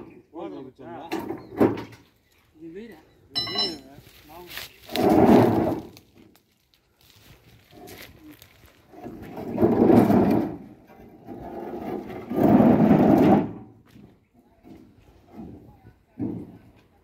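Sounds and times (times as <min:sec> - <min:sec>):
stone posts grinding scrapes: 0:04.8 - 0:06.1, 0:08.7 - 0:13.8.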